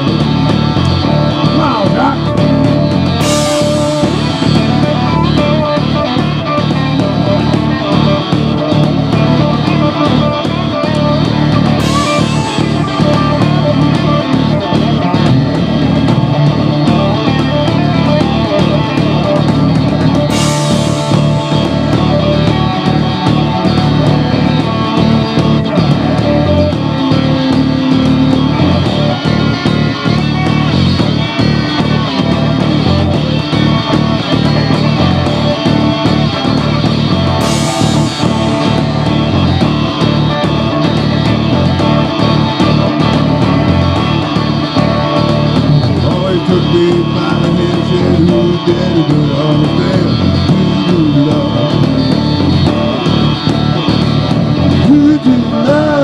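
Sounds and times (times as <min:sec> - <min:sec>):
electric guitar: 0:00.0 - 0:56.0
live rock band playing: 0:00.0 - 0:56.0.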